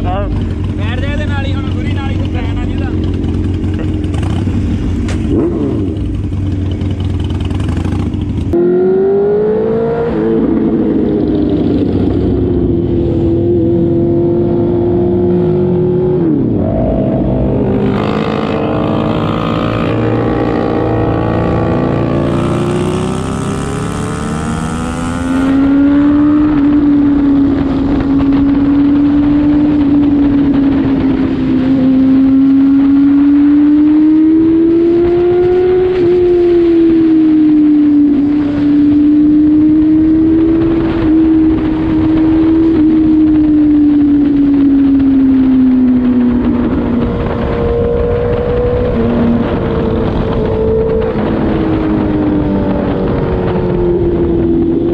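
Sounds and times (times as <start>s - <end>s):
motorcycle engine accelerating: 0.0s - 54.9s.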